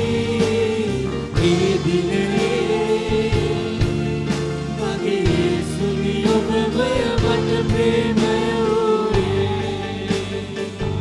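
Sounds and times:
man singing a hymn: 0:00.0 - 0:04.2
keyboard with steady beat: 0:00.0 - 0:11.0.

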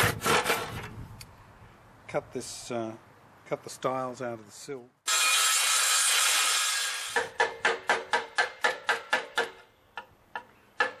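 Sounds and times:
handsaw cutting wood: 0:00.0 - 0:00.8, 0:05.1 - 0:07.2.

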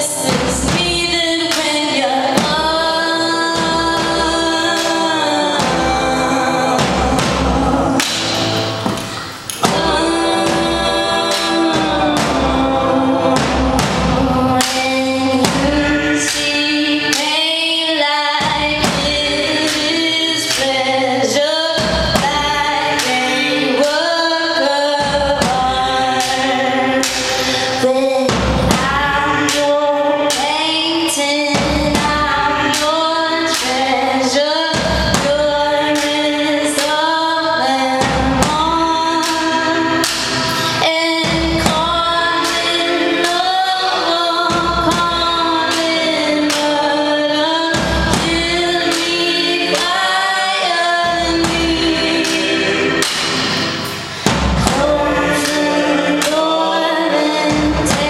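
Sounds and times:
live band music: 0:00.0 - 0:58.0
sharp percussive hits: 0:00.0 - 0:58.0
woman singing: 0:00.0 - 0:58.0.

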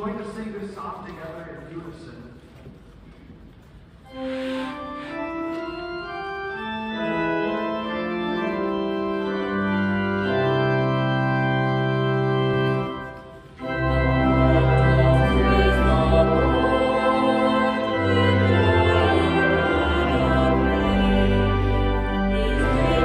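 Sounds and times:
slow sustained hymn chords: 0:04.0 - 0:23.0.

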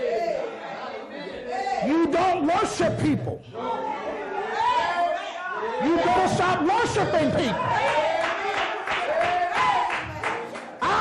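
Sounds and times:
voices calling out in a large room: 0:00.0 - 0:11.0
preacher speaking: 0:01.7 - 0:04.0, 0:05.2 - 0:07.9.

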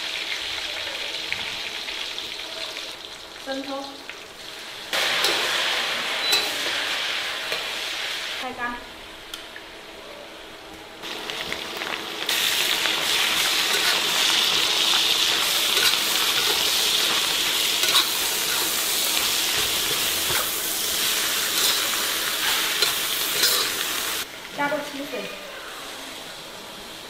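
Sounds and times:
food sizzling in a wok: 0:00.0 - 0:09.2, 0:11.0 - 0:27.0
spatula scraping a wok: 0:13.0 - 0:24.2.

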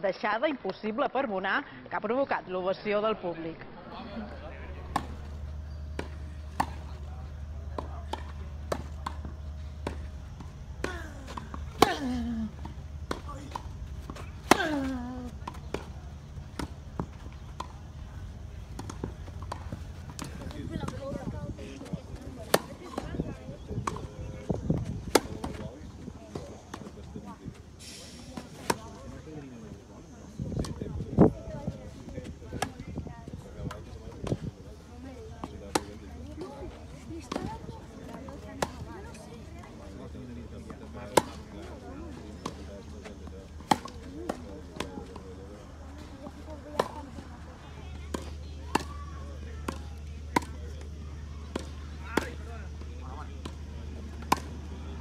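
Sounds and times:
tennis ball bouncing: 0:04.7 - 0:27.3, 0:35.0 - 0:39.9, 0:40.6 - 0:47.3, 0:47.9 - 0:49.0, 0:49.6 - 0:54.9
tennis racket hitting ball: 0:04.9 - 0:07.0, 0:22.4 - 0:23.2, 0:25.0 - 0:25.6, 0:41.1 - 0:41.5, 0:43.6 - 0:45.1, 0:54.2 - 0:54.6.

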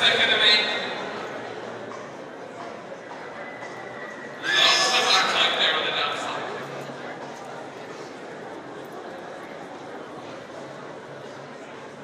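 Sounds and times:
foal whinnying: 0:04.4 - 0:05.1.

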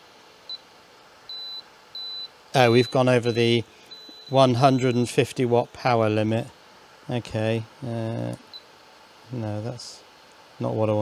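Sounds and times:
faint cooling fan whoosh: 0:00.0 - 0:11.0
high buzzer beeps: 0:01.3 - 0:05.2.

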